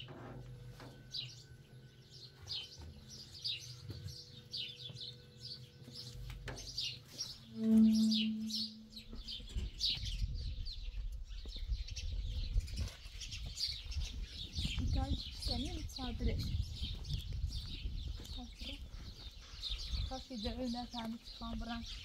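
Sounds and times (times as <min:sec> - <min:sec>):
small birds chirping: 0:01.1 - 0:22.0
low steady tone: 0:07.5 - 0:09.4.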